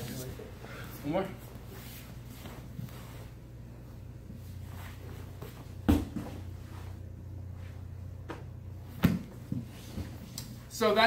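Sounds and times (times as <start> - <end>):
steady low hum: 0.0 - 11.0
body thudding on padded mat: 5.4 - 6.5.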